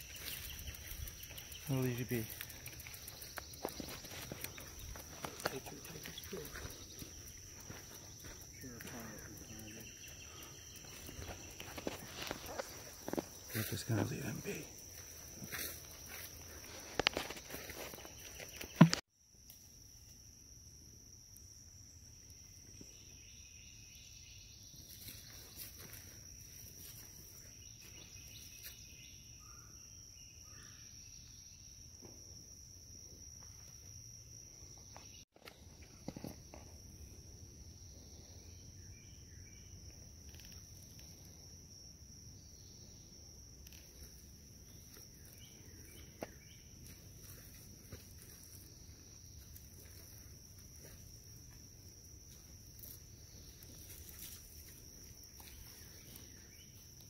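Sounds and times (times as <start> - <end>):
faint chirps: 0.0 - 16.3
insects droning: 0.0 - 57.0.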